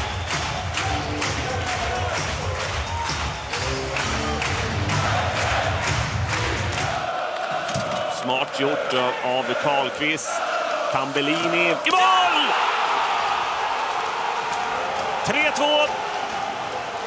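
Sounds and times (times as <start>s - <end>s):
music with steady beat: 0.0s - 6.9s
crowd cheering and chanting: 0.0s - 17.0s.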